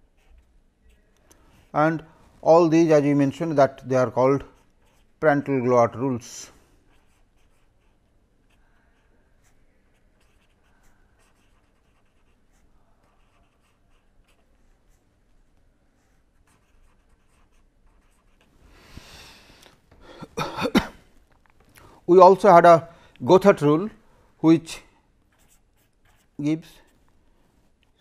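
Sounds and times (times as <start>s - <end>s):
pen scratching on paper: 0.0s - 1.8s, 4.4s - 5.2s, 6.9s - 15.0s, 16.0s - 18.5s, 25.3s - 27.0s
breath in: 18.7s - 20.5s.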